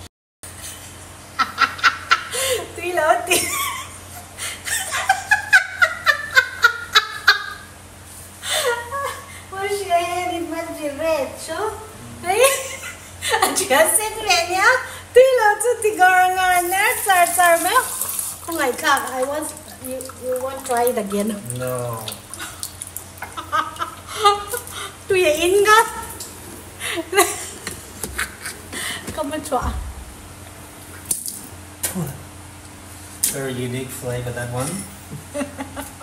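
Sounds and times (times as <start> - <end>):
woman laughing: 1.4 - 7.7, 8.4 - 9.4, 12.2 - 13.9, 23.2 - 25.0, 26.8 - 29.0, 35.2 - 36.0
person speaking: 20.2 - 22.2.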